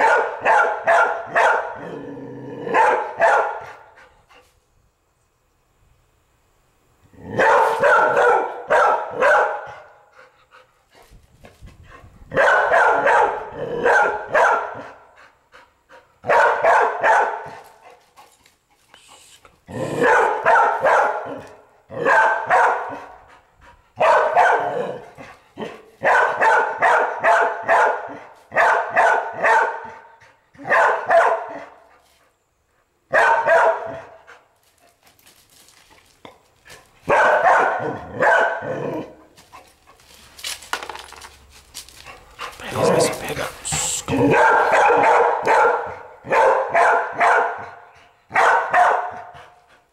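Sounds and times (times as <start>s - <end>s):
dog barking: 0.0s - 2.0s, 2.6s - 3.9s, 7.3s - 9.9s, 12.3s - 15.0s, 16.2s - 17.7s, 19.8s - 23.2s, 24.0s - 31.8s, 33.1s - 34.3s, 37.0s - 39.2s, 42.6s - 49.6s.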